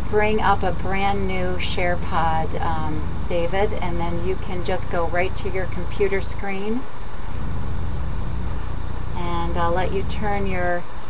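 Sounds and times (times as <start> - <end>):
low rumble: 0.0 - 10.8.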